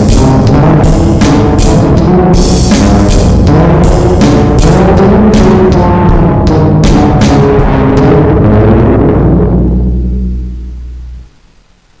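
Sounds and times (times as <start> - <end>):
low heavy drone: 0.0 - 12.0
faint hiss: 9.6 - 12.0.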